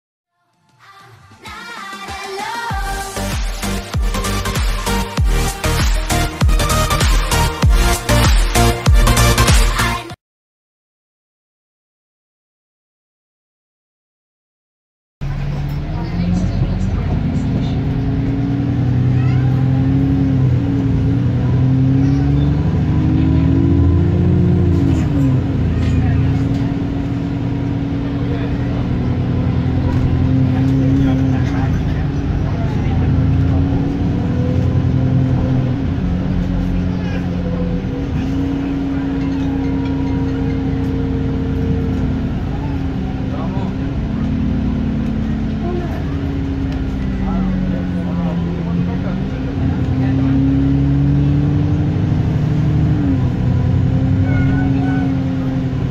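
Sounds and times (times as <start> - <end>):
bus diesel engine running: 2.4 - 10.2, 15.2 - 55.9
gear change: 15.2 - 55.9
passengers talking: 15.2 - 55.9.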